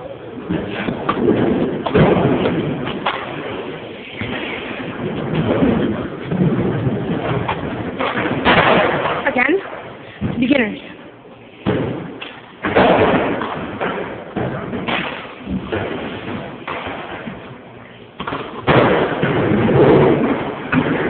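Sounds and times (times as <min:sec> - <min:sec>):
people talking: 0:09.2 - 0:11.0.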